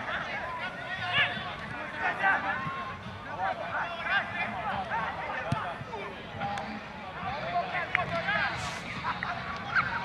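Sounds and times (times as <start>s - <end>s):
people calling and shouting: 0.0s - 10.0s.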